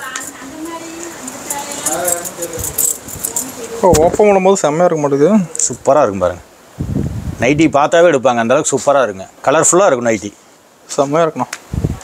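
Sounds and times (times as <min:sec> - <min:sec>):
cloth rustling: 0:00.0 - 0:04.2.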